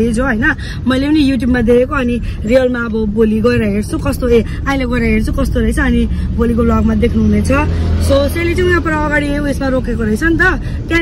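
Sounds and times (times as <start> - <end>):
car low rumble: 0.0 - 11.0
woman talking: 0.0 - 11.0.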